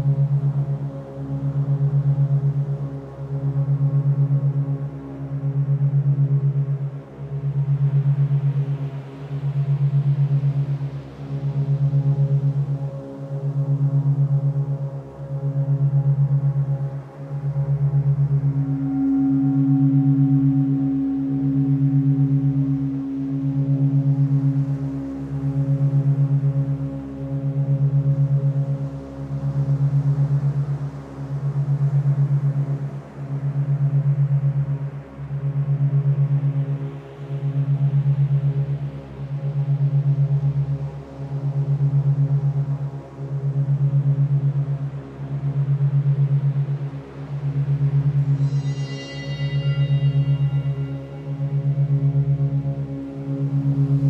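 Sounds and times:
low fluttering drone tone: 0.0 - 54.0
soft ambient tones: 0.0 - 54.0
higher held tone: 48.4 - 51.4.

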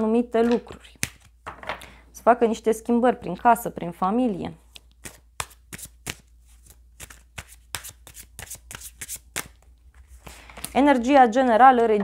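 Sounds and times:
cards being shuffled: 0.4 - 1.4, 4.6 - 10.9.

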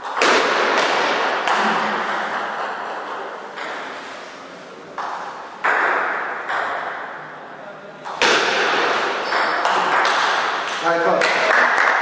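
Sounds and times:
table tennis ball hits: 0.0 - 4.1, 5.0 - 7.2, 8.0 - 12.0.

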